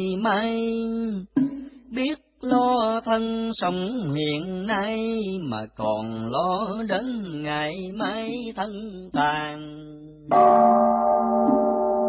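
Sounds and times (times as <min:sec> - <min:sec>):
temple bell ringing: 0:10.3 - 0:12.0.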